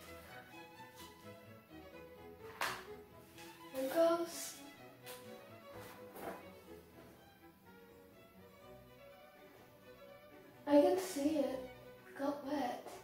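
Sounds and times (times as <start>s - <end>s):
soft instrumental music: 0.0s - 13.0s.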